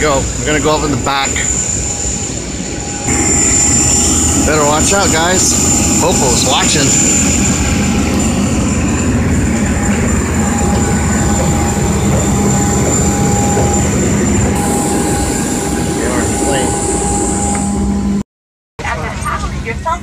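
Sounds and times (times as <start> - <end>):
jet turbine rumble and whine: 0.0 - 18.2
mid-pitched hum: 0.0 - 18.2.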